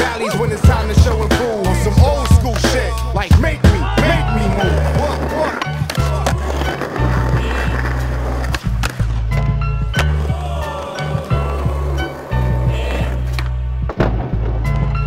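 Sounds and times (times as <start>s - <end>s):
hip-hop beat with heavy bass: 0.0s - 8.8s, 9.5s - 15.0s
skateboard wheels rolling on concrete: 0.0s - 15.0s
skateboard grinding on ledge: 1.3s - 13.4s
skateboard pops and slaps: 10.0s - 10.2s.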